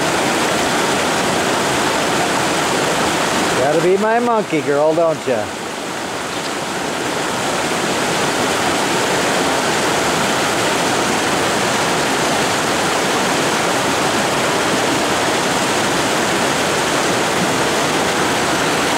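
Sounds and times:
river rapids rushing: 0:00.0 - 0:18.9.

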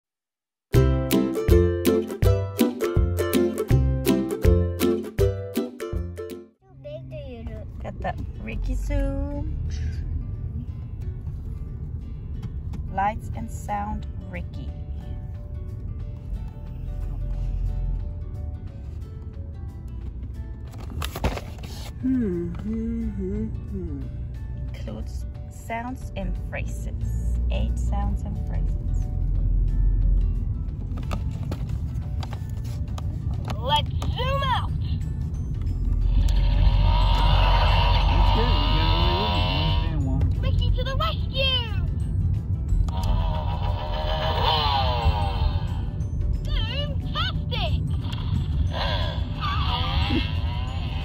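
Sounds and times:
soft background music: 0:00.8 - 0:51.0
toy character voice phrases: 0:38.6 - 0:41.9, 0:46.5 - 0:47.8
toy music and sound effects: 0:42.9 - 0:45.9.

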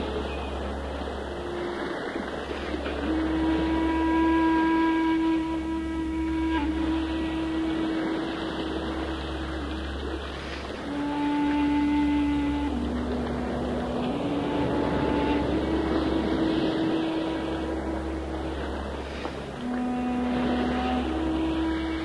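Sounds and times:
shakuhachi playing low held notes: 0:00.0 - 0:22.0.

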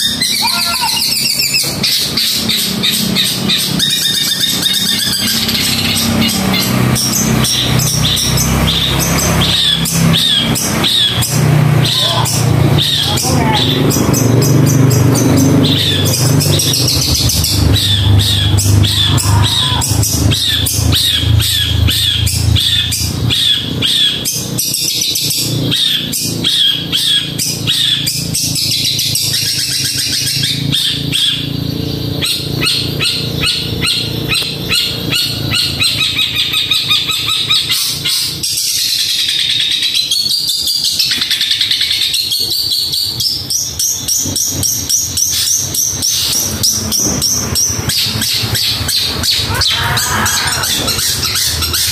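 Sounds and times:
bird chattering song: 0:00.0 - 0:51.9
low rumble: 0:14.9 - 0:23.8.

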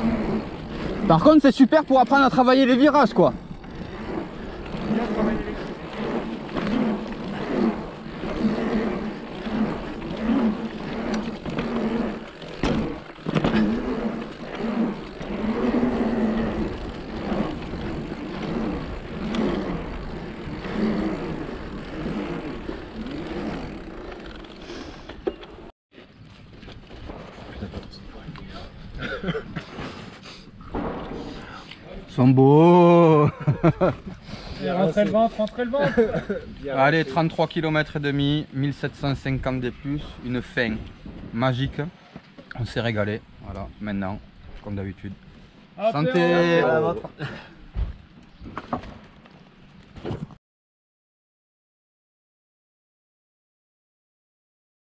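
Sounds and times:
bike tyre and drive noise: 0:00.0 - 0:50.4.

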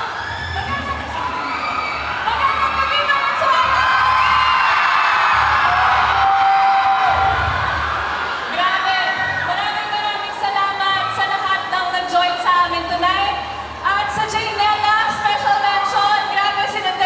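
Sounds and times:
crowd screaming and cheering: 0:00.0 - 0:16.9.

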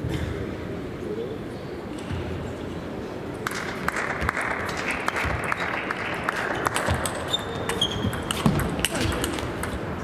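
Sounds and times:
sports hall noise: 0:00.0 - 0:10.0.

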